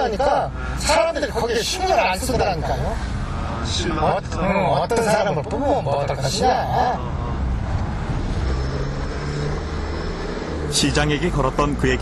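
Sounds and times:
car engine hum: 0:00.0 - 0:12.0
road noise: 0:00.0 - 0:12.0.

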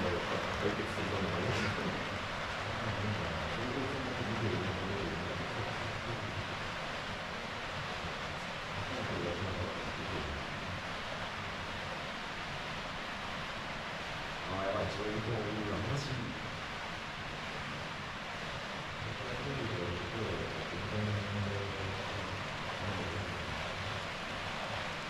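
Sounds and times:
faint low murmur: 0:00.0 - 0:25.0
hiss-like room ambience: 0:00.0 - 0:25.0.

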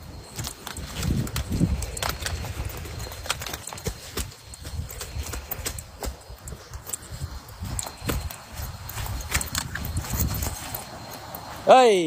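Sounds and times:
leaves brushing: 0:00.0 - 0:12.0
twigs snapping: 0:00.2 - 0:11.3.

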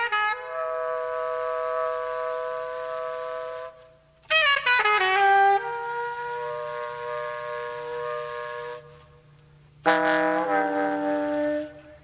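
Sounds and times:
tenor saxophone playing: 0:00.0 - 0:12.0.

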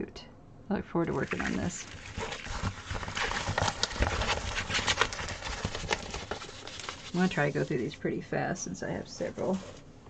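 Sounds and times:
plastic rustling: 0:01.0 - 0:08.0, 0:09.0 - 0:09.9.

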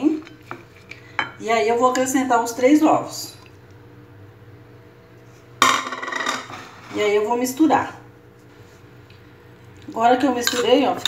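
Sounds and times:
dishes rattling and scraping: 0:05.6 - 0:07.1.

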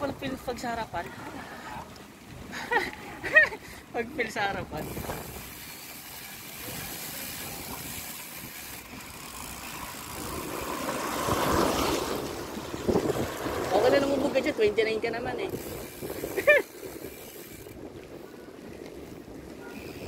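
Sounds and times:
bicycle tyre hiss on wet road: 0:04.8 - 0:14.7, 0:15.5 - 0:18.2
wind rush: 0:09.9 - 0:20.0.

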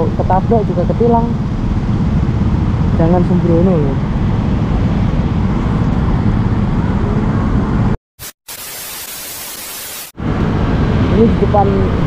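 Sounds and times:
street traffic noise: 0:00.0 - 0:08.0, 0:10.2 - 0:12.0
tv static hiss: 0:08.2 - 0:10.1.

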